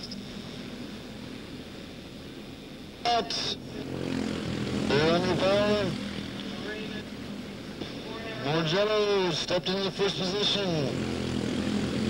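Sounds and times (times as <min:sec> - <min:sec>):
small race car engines droning: 0:00.0 - 0:12.0.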